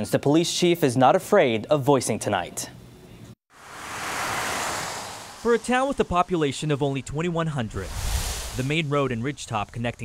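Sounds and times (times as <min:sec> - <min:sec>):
tyre hiss on wet road: 0:03.5 - 0:06.8, 0:07.7 - 0:09.0.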